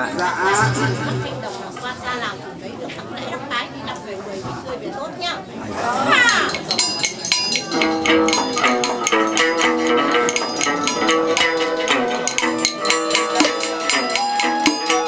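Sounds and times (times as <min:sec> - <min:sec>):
plucked string instrument: 0:00.0 - 0:01.9, 0:06.2 - 0:15.0
people talking at once: 0:00.0 - 0:15.0
clicking percussion beat: 0:06.3 - 0:15.0.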